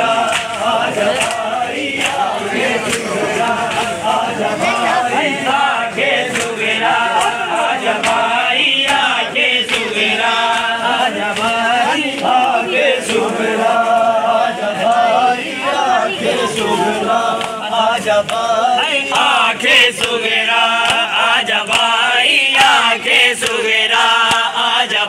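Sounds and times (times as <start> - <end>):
men chanting in unison: 0.0 - 25.0.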